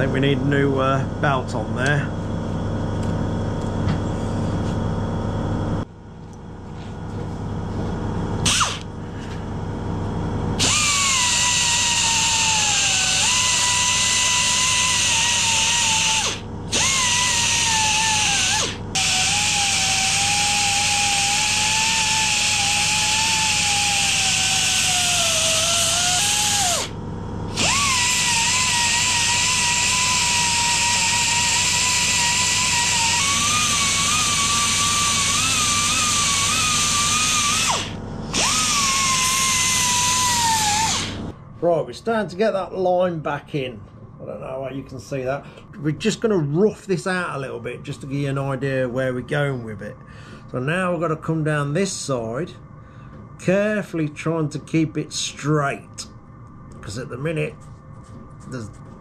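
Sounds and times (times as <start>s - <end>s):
belt sander grinding metal: 8.4s - 8.9s, 10.6s - 41.3s.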